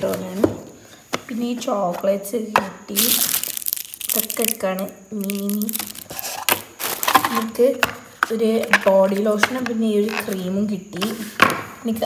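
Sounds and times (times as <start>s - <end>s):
woman talking: 0.0s - 0.6s, 1.2s - 6.1s, 7.1s - 12.0s
plastic packaging crinkling: 2.9s - 7.5s.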